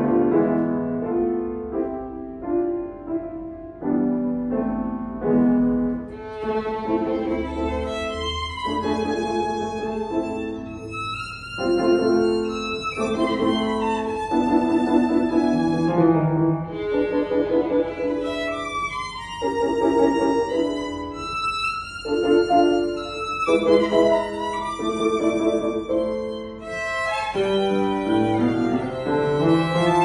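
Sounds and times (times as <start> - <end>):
piano chords: 0.0 - 30.0
solo violin melody: 6.0 - 30.0.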